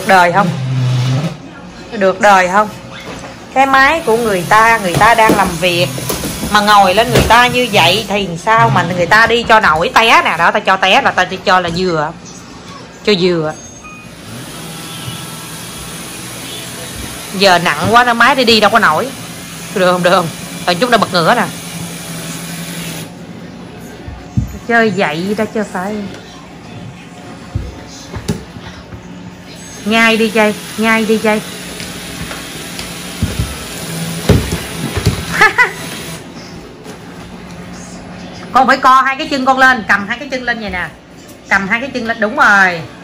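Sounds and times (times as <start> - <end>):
robot vacuum cleaner whirring: 14.1 - 23.1.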